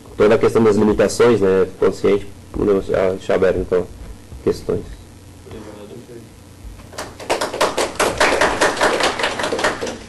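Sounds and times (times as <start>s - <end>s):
small audience applauding: 6.8s - 10.0s.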